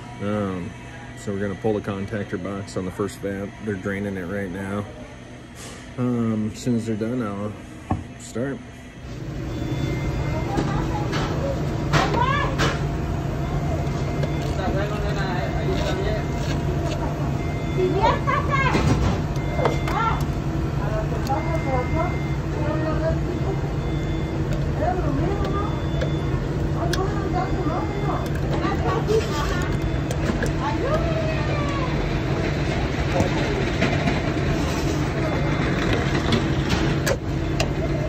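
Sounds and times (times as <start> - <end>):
low machine hum: 0.0 - 38.0
indistinct voices talking: 9.5 - 38.0.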